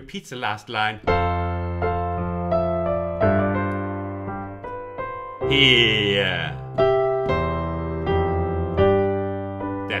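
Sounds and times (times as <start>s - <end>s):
piano playing slow chords: 1.0s - 10.0s.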